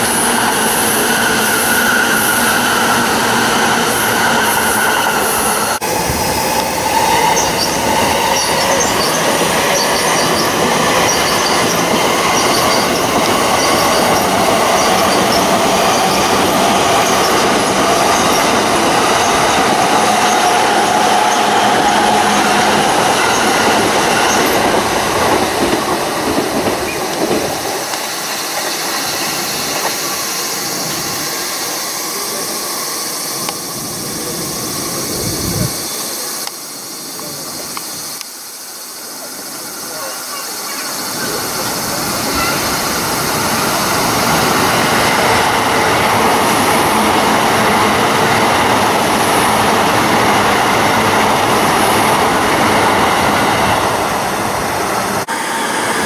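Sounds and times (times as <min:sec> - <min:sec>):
wheel squeal on rail: 0:00.0 - 0:33.6
train wheels rolling on rail: 0:00.0 - 0:56.0.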